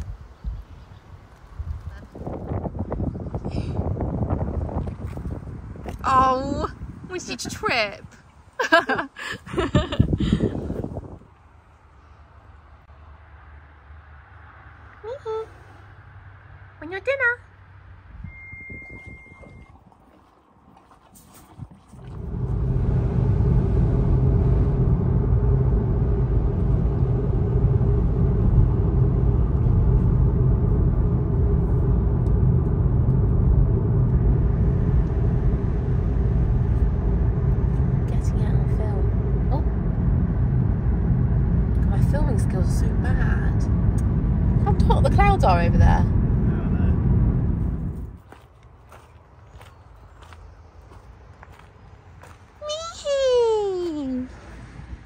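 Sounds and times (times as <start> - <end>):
car road and engine rumble: 0.0 - 55.0
low hum: 0.0 - 55.0.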